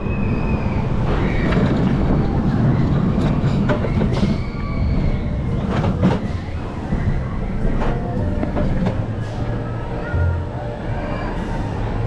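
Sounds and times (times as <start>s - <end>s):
coaster car rumbling on steel track: 0.0s - 12.0s.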